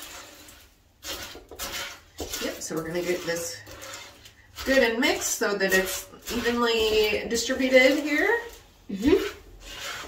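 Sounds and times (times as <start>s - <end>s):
wooden spoon stirring sticky mixture: 0.0s - 10.0s.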